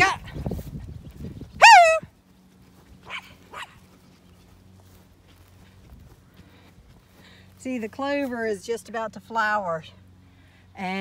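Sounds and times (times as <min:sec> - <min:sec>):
dog barking: 0:03.1 - 0:03.8.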